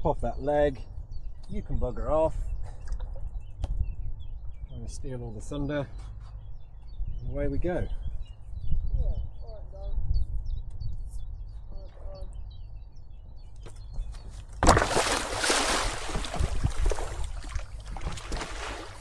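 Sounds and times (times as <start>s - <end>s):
wind rumble on microphone: 0.0s - 15.0s, 15.6s - 19.0s
loud splash: 14.6s - 19.0s
water rushing and sloshing: 14.6s - 19.0s.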